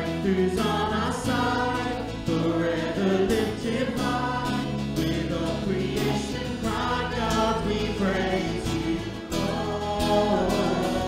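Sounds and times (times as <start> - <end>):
bass guitar: 0.0 - 11.0
strummed acoustic guitars: 0.0 - 11.0
voices singing together: 0.0 - 11.0.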